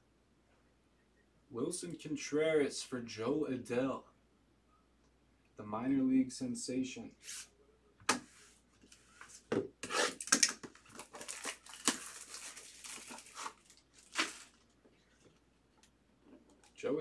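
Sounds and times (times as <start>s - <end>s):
plastic wrapper tearing and crinkling: 9.8s - 14.8s.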